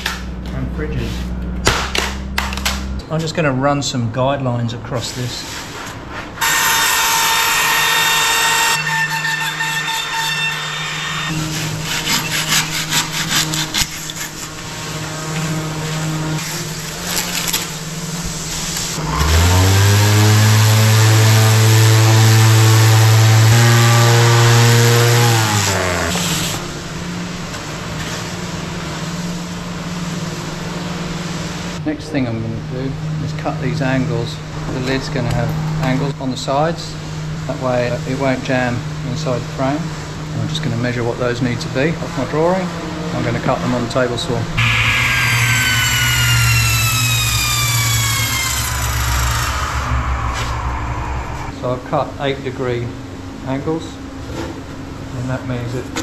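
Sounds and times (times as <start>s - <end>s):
router whining cutting foam: 6.4s - 17.9s, 18.7s - 26.7s, 44.6s - 51.6s
palm sander running: 6.4s - 31.8s, 42.2s - 51.6s.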